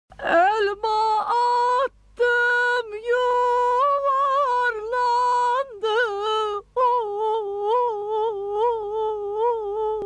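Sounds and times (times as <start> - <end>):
woman singing long wordless notes: 0.2 - 10.0.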